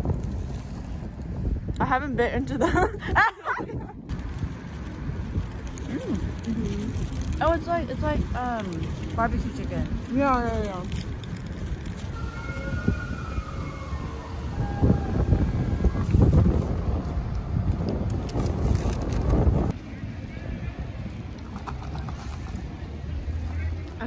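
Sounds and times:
wind noise on microphone: 0:00.0 - 0:23.0
distant siren: 0:12.2 - 0:17.0.

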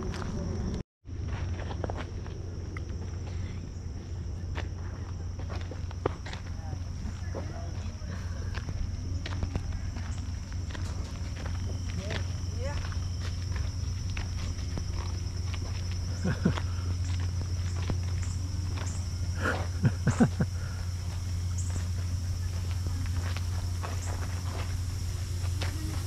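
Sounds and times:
steady low hum: 0:00.0 - 0:26.0
light footsteps: 0:04.1 - 0:26.0
thin high tone: 0:10.8 - 0:26.0.

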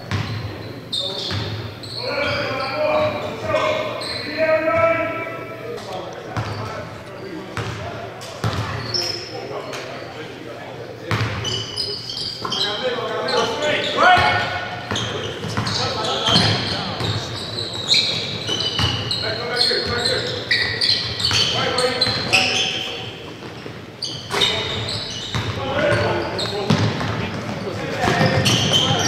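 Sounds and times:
players shouting: 0:12.8 - 0:14.8
basketballs bouncing on wooden floor: 0:25.2 - 0:29.0.

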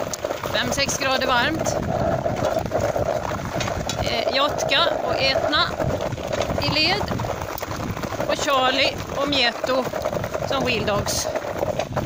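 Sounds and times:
dog paws on gravel: 0:00.0 - 0:12.0
footsteps on gravel: 0:00.0 - 0:12.0.

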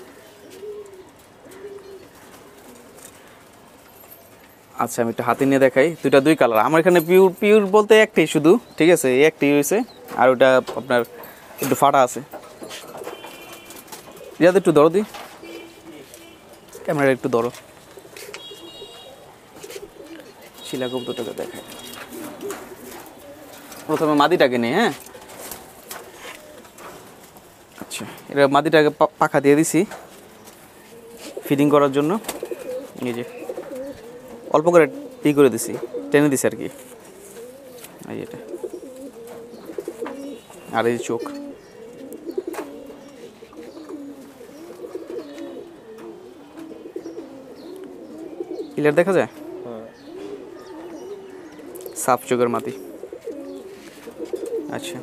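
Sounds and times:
pigeons cooing: 0:00.0 - 0:55.0.

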